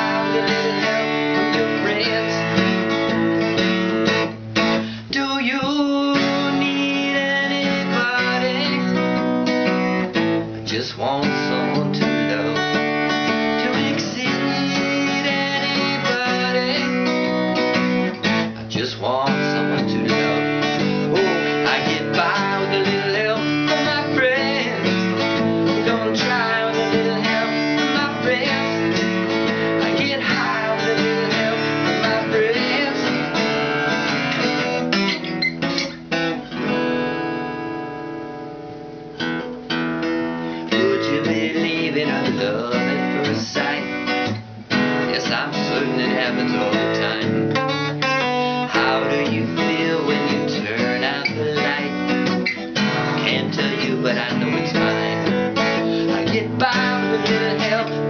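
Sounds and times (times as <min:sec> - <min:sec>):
acoustic guitar strumming: 0:00.0 - 0:58.0.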